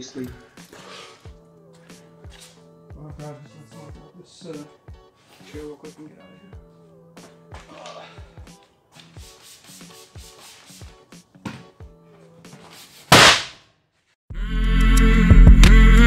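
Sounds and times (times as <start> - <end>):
airbag deploying bang: 13.1 - 13.6
loud intro music: 14.3 - 16.0.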